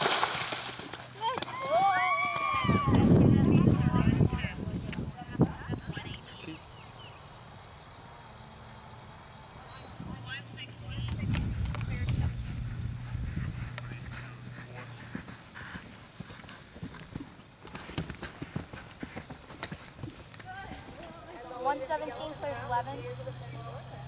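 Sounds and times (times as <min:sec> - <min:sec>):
horse hoofbeats on grass: 0:00.0 - 0:04.6, 0:10.5 - 0:21.6
low rumble with hum: 0:09.4 - 0:14.8.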